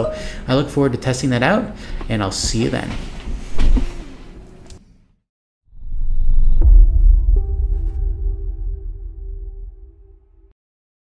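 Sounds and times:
deep rumble with whoosh: 5.7s - 10.5s.

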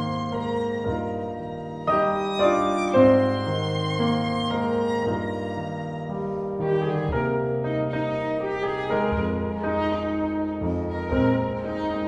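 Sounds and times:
piano chords: 0.0s - 12.0s
violin: 0.0s - 12.0s.

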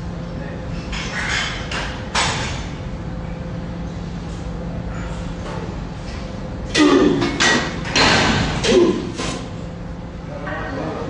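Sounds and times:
man grunting with effort: 6.7s - 7.5s, 8.4s - 9.4s.

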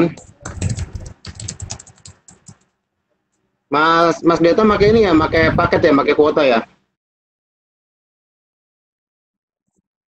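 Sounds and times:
computer keyboard typing: 0.0s - 2.8s.

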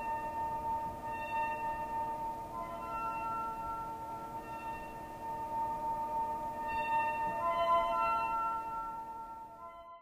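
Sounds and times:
ringing singing bowl tones: 0.0s - 10.0s.

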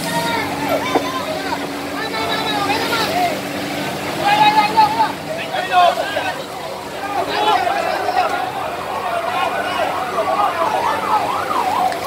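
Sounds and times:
raised voices calling out: 0.0s - 11.8s
fire truck engine humming: 0.0s - 12.0s.

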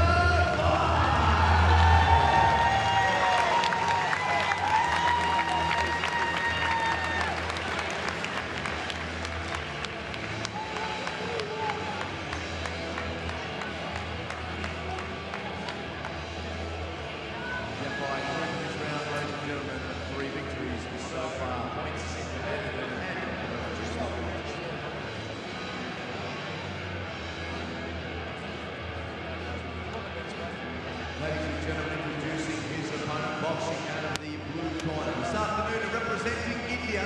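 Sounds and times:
music with heavy bass and singing: 0.0s - 2.6s
crowd murmur: 0.0s - 37.0s
scattered clapping: 2.6s - 16.4s.

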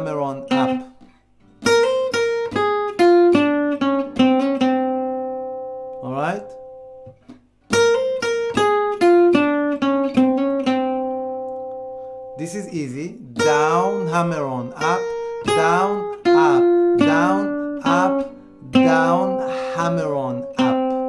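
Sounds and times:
jazz guitar blues phrase: 0.0s - 1.0s, 1.6s - 21.0s.

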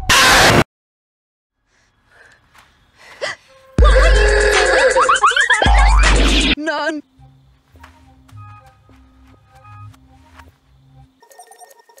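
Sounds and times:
music with warbling tones and heavy bass: 3.8s - 5.0s, 5.6s - 6.6s.

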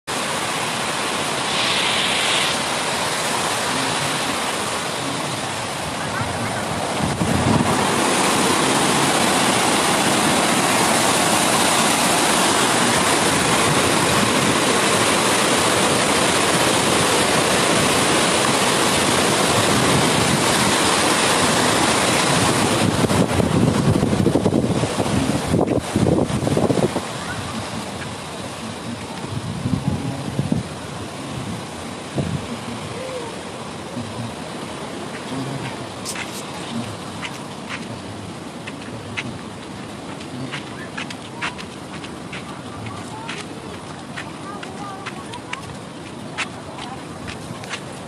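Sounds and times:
water roaring through spillway: 0.0s - 48.0s
wind buffeting microphone: 3.5s - 48.0s.

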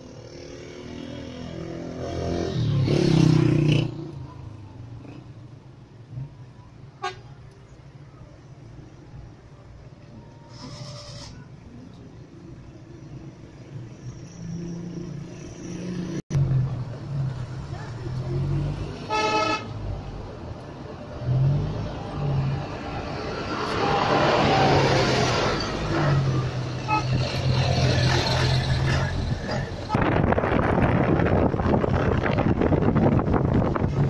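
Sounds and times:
vehicle horn: 19.0s - 19.8s, 26.8s - 27.4s.

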